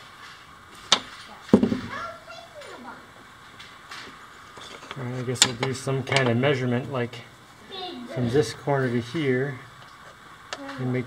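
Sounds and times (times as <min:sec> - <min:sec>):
wood knocking on a workbench: 0:01.5 - 0:01.9.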